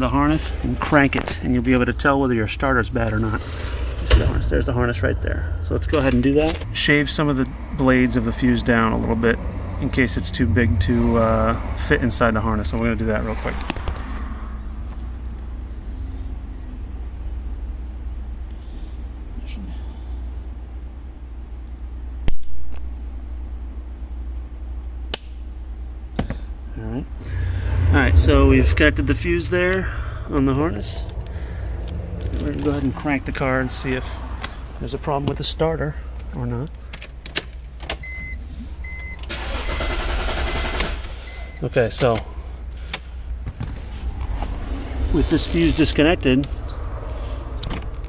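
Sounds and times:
steady low hum: 0:00.0 - 0:39.4, 0:41.5 - 0:48.0
starter motor cranking engine: 0:39.2 - 0:41.2.

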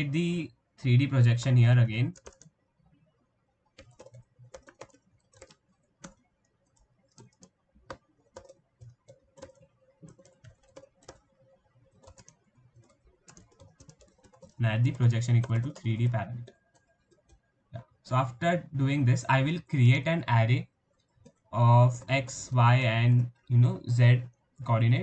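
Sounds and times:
typing on a keyboard: 0:01.4 - 0:02.6, 0:03.7 - 0:17.5, 0:20.6 - 0:24.4.

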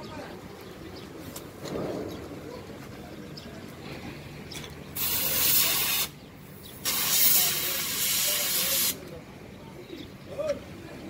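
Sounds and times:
compressed air hissing: 0:05.0 - 0:09.0.

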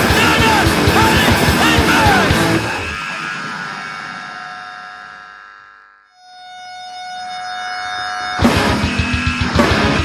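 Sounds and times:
distorted guitar chord ringing: 0:00.0 - 0:10.0.

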